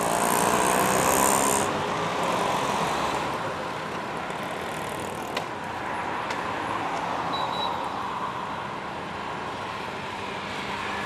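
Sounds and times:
cars and motorcycles passing: 0:00.0 - 0:11.0.

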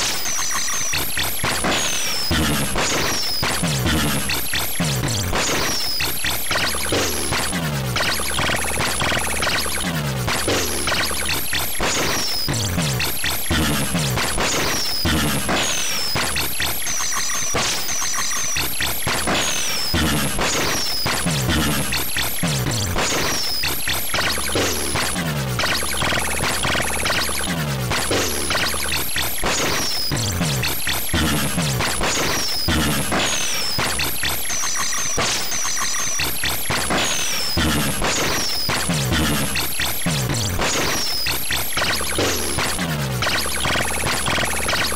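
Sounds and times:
harsh one-bit electronic music: 0:00.0 - 0:44.9.

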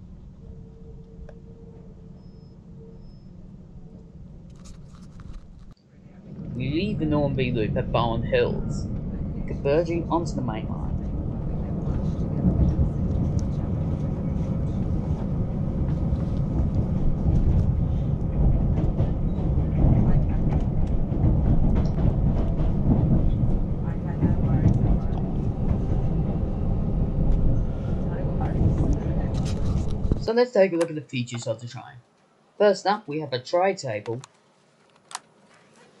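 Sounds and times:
train wheels rumbling on rails: 0:04.5 - 0:30.3.

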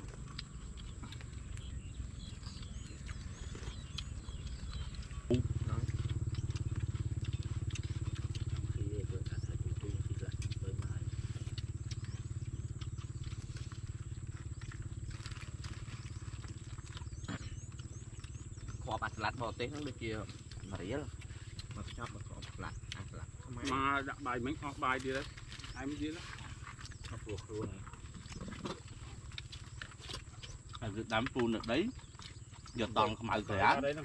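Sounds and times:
low steady rumble: 0:00.0 - 0:34.0.

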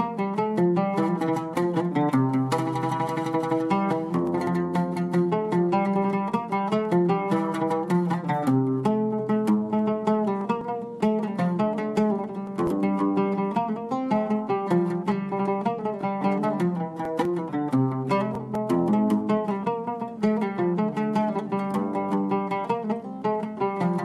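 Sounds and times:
oud plucked with plectrum: 0:00.0 - 0:24.0.

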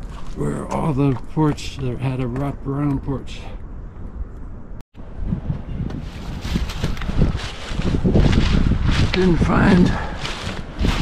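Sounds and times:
wind buffeting microphone: 0:03.6 - 0:11.0.

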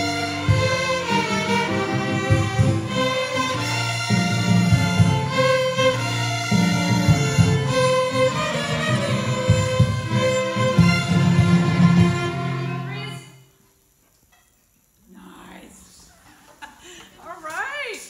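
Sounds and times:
children's violins playing in unison: 0:00.0 - 0:13.4.

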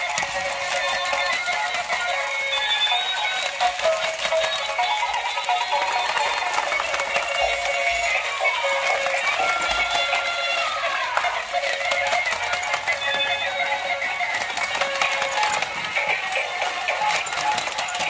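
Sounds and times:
toys playing tinny electronic tunes: 0:00.0 - 0:18.0.

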